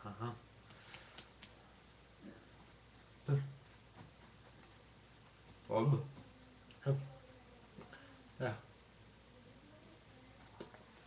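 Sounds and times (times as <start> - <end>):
person voicing ha ha: 0.0 - 0.4
faint sharp clicks: 0.6 - 1.6.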